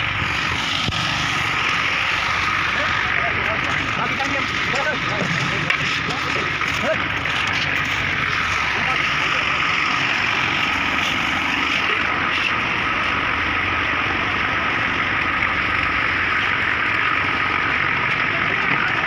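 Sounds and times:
engine running steadily: 0:00.0 - 0:19.0.

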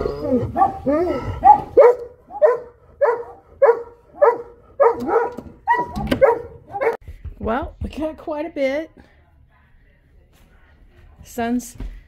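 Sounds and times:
dog barking: 0:00.5 - 0:07.0.

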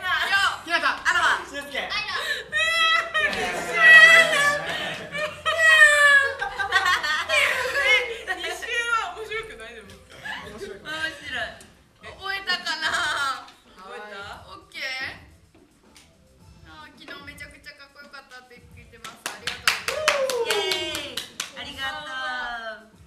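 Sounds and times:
group laughing: 0:02.0 - 0:08.9
hands clapping quickly: 0:03.2 - 0:03.5, 0:19.0 - 0:21.8.

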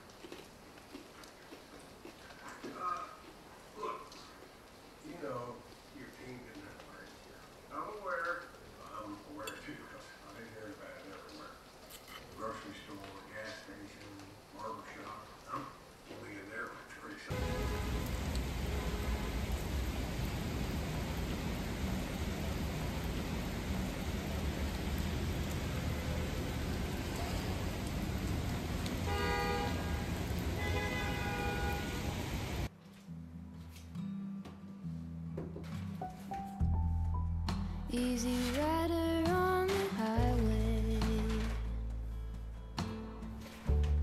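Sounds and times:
heavy rain on street: 0:00.0 - 0:32.7, 0:37.9 - 0:41.7
car horn: 0:17.3 - 0:19.6, 0:29.0 - 0:32.4
low rumble of traffic: 0:17.3 - 0:32.7.

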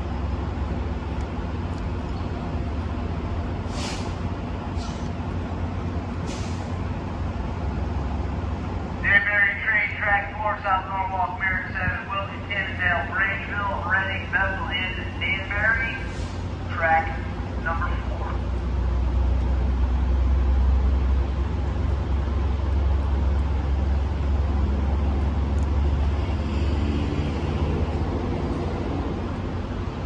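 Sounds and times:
low rumble of rail traffic: 0:00.0 - 0:30.0
announcement over loudspeakers: 0:09.0 - 0:18.5.

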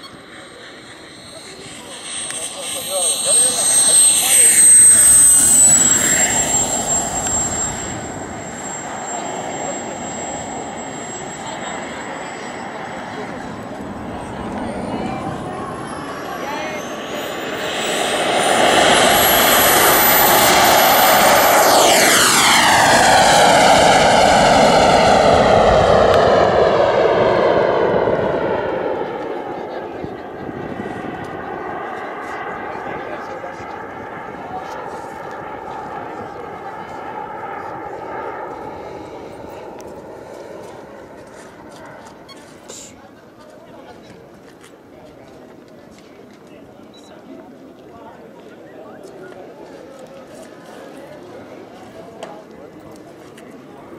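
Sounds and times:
model jet turbine whine: 0:00.0 - 0:43.1.

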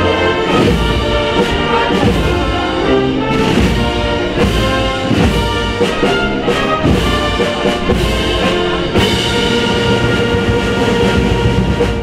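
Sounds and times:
brass band sustained chord: 0:00.0 - 0:12.0.

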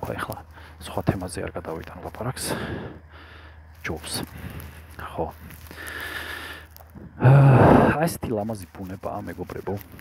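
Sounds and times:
loud breathy vocal sound: 0:05.7 - 0:08.0.

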